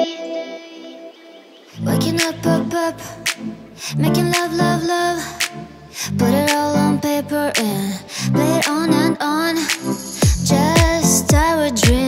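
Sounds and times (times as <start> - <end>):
deep house music: 9.7 - 12.0.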